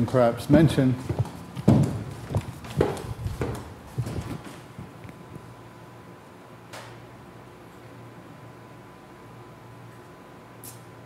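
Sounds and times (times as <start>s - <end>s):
footsteps on hard floor: 0.5s - 5.0s.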